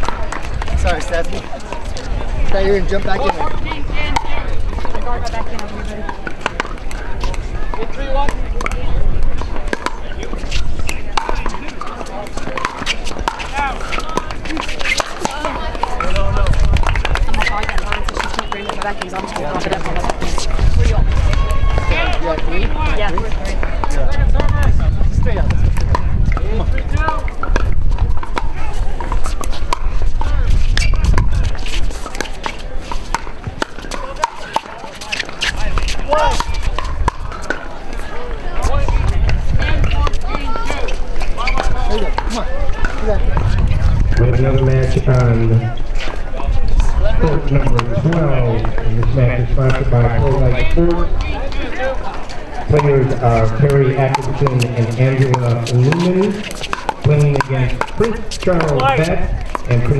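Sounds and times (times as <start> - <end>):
murmur of voices: 0.0 - 59.9.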